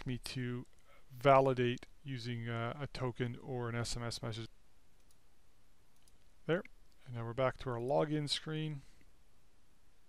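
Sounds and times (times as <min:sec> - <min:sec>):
faint mouse clicks: 0:05.0 - 0:05.3, 0:05.9 - 0:07.1.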